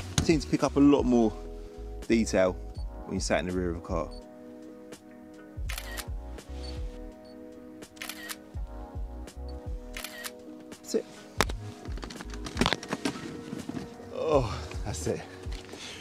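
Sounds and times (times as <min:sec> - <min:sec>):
background music sustained chords: 0:00.0 - 0:16.0
camera shutter clicks: 0:05.7 - 0:06.1, 0:07.9 - 0:08.4, 0:09.9 - 0:10.4.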